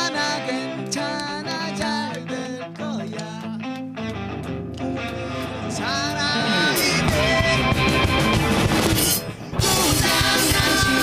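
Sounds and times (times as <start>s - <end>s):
bass guitar: 0.0s - 11.0s
strummed electric guitars: 0.0s - 11.0s.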